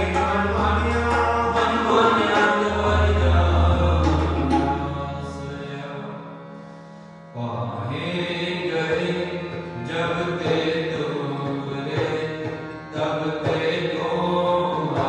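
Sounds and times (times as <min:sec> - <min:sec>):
chanted singing: 0:00.0 - 0:06.2
harmoniums playing sustained chords: 0:00.0 - 0:15.0.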